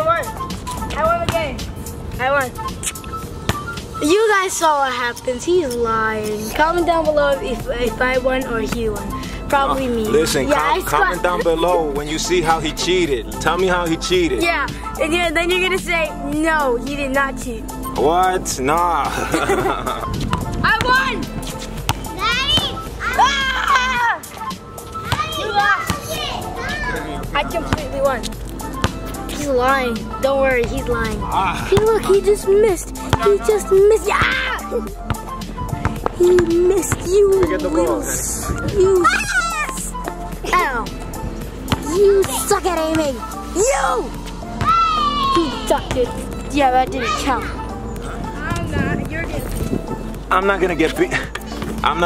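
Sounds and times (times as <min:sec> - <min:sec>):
background music: 0:00.0 - 0:52.0
child shouting excitedly: 0:20.6 - 0:21.2, 0:22.1 - 0:24.3, 0:25.0 - 0:28.2, 0:29.4 - 0:34.9, 0:36.2 - 0:41.0, 0:41.8 - 0:47.7
high-pitched voice calling out: 0:38.4 - 0:40.9.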